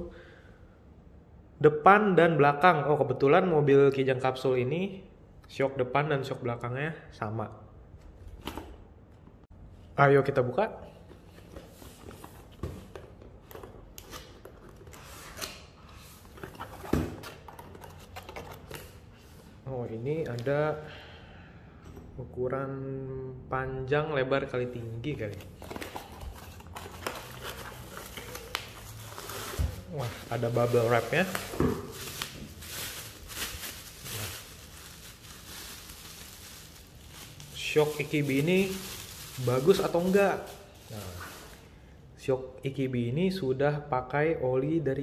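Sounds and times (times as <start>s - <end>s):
bubble wrap crinkling: 25.6s - 41.6s.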